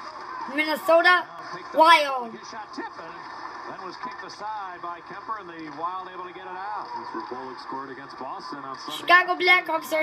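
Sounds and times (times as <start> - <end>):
commentator talking from a television: 0.4 - 10.0.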